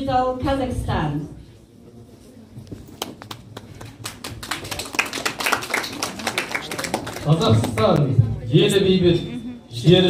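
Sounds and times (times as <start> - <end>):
audience applause: 3.2 - 7.9.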